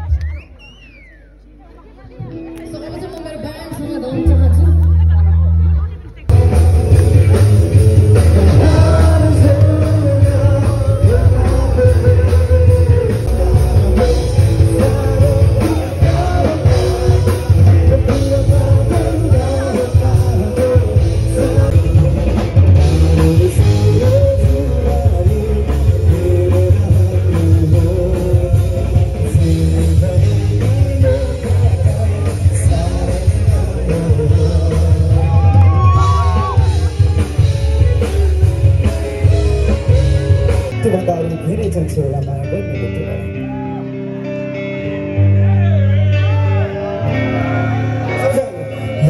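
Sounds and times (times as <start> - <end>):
heavy bass: 0.0 - 49.0
live rock band: 0.0 - 49.0
electric guitar: 2.0 - 49.0
man singing into a microphone: 3.3 - 5.0, 6.3 - 37.0.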